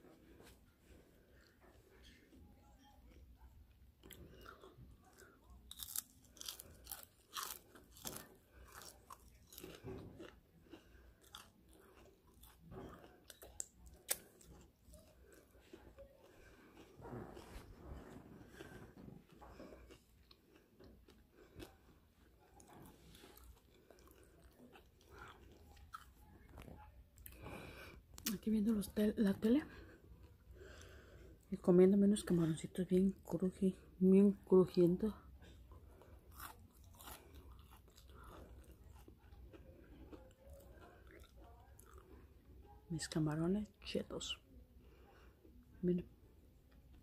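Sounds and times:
crunchy chewing: 0.2 - 28.3, 35.4 - 42.3.

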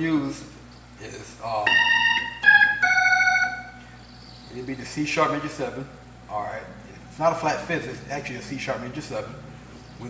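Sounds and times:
organ playing chords: 1.4 - 5.9.

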